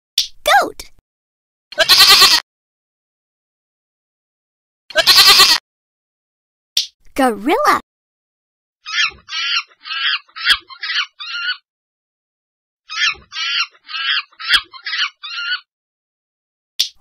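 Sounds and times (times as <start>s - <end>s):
sharp click: 0.2s - 0.4s, 6.8s - 7.0s, 16.8s - 17.0s
high pitched animal calls: 8.8s - 11.6s, 12.9s - 15.7s.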